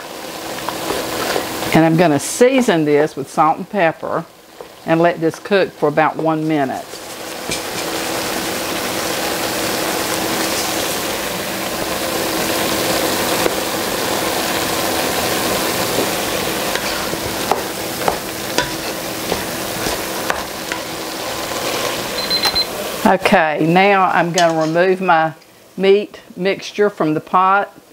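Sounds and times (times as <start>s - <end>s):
sausage sizzling in a pot: 0.0s - 27.9s
wooden spoon stirring and scraping: 6.2s - 8.0s, 15.5s - 22.3s.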